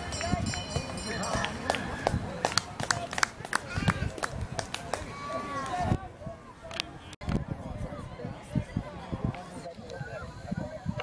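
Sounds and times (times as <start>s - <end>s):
people calling and shouting: 0.0s - 11.0s.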